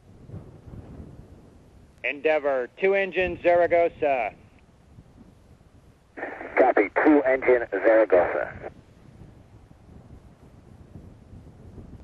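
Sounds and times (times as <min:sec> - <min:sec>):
faint radio hiss: 0:06.1 - 0:08.8
voice over radio: 0:06.2 - 0:08.7.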